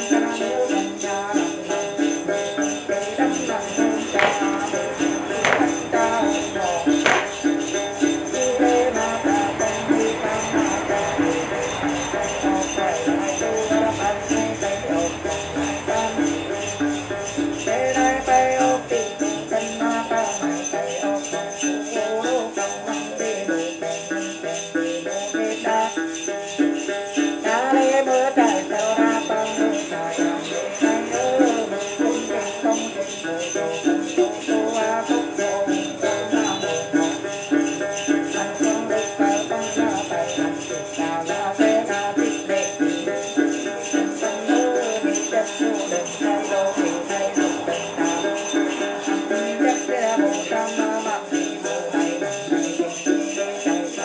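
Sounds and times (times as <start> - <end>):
jingle bells shaken: 0.0 - 54.0
ritual song with lute: 0.0 - 54.0.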